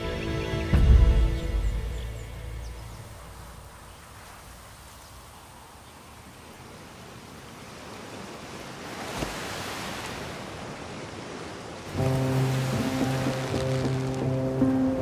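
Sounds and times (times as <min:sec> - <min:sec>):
background music with low notes: 0:00.0 - 0:03.3, 0:11.9 - 0:15.0
rushing water: 0:00.0 - 0:15.0.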